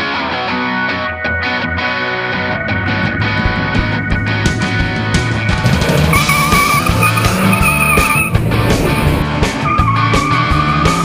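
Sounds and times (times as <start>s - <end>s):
tyres squealing: 5.8s - 9.2s.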